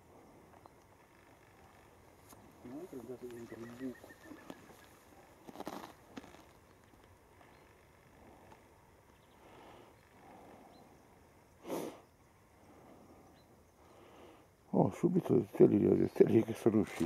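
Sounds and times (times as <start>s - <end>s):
loud hissing noise: 11.6s - 12.1s.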